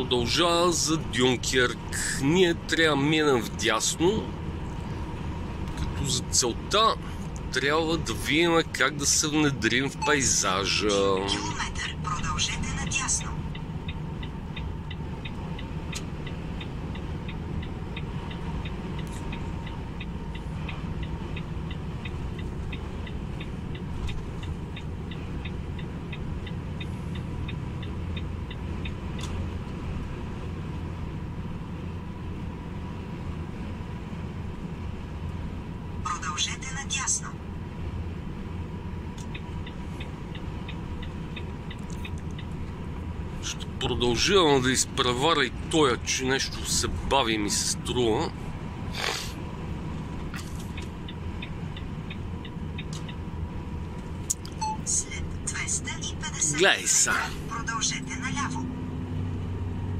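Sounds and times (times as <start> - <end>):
road noise: 0.0 - 59.9
truck diesel engine drone: 0.0 - 59.9.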